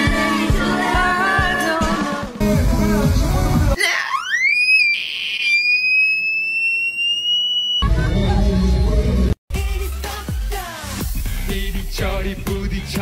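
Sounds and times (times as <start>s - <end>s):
pop music: 0.0s - 3.8s, 8.3s - 13.0s
high-pitched rising squeal: 4.1s - 9.0s.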